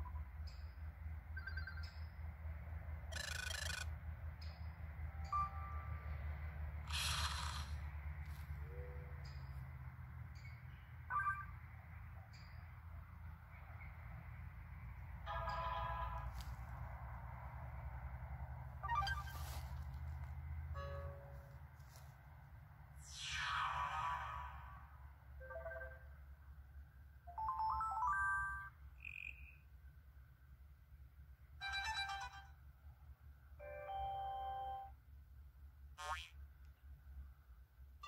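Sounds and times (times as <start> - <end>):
brief single tone: 5.2 - 6.1, 8.7 - 9.1, 20.8 - 21.4, 33.6 - 35.0.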